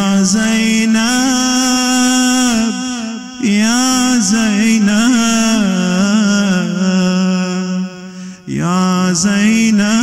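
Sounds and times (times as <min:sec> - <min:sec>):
man chanting a lament: 0:00.0 - 0:10.0.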